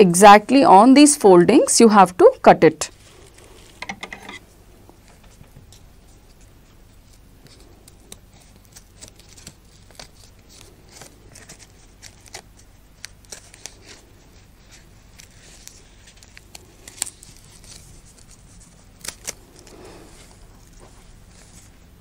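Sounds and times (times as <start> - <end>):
paper rustling: 5.1 - 22.0
scissors snipping paper: 6.3 - 19.9.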